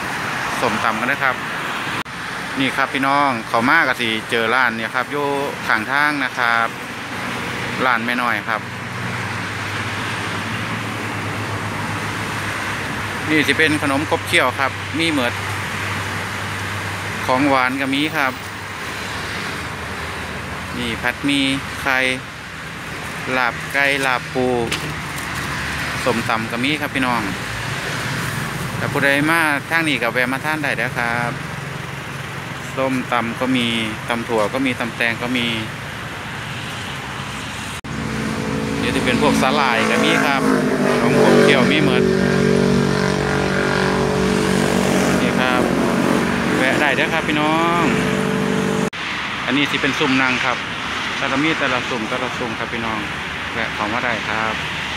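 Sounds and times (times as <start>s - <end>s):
road traffic with engine hum: 0.0s - 54.9s.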